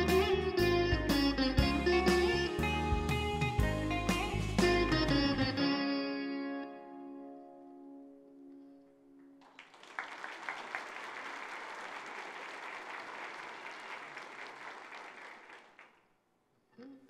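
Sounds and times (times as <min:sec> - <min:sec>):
veena and electric guitar notes: 0:00.0 - 0:09.4
audience applause: 0:09.4 - 0:16.0.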